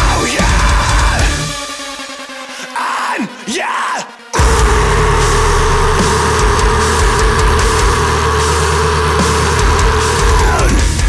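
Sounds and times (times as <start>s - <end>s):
heavy metal band playing: 0.0s - 1.7s, 3.1s - 11.0s
steady high held note: 4.4s - 10.6s.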